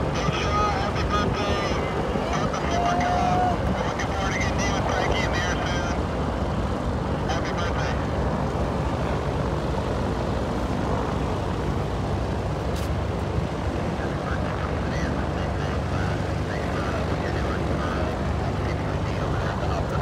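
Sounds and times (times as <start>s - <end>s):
propeller airplane engines taxiing: 0.0s - 20.0s.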